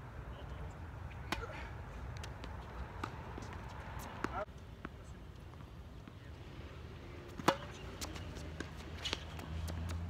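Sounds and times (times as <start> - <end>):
tennis racket hitting ball: 7.4 - 10.0.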